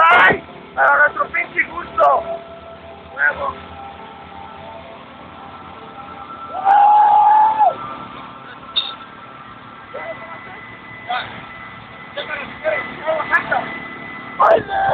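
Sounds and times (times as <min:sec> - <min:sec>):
street noise: 0:00.0 - 0:14.9
background chatter: 0:07.8 - 0:14.9
person shouting: 0:14.5 - 0:14.9.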